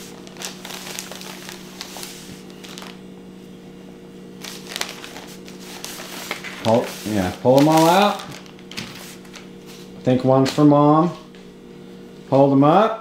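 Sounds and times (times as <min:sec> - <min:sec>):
plastic bag crinkling: 0:00.0 - 0:03.0, 0:04.4 - 0:09.5
steady low hum: 0:00.0 - 0:13.0.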